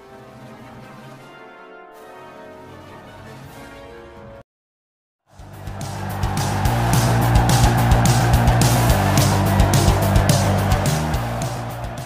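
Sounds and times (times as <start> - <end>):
music with drum beat: 5.4 - 12.0.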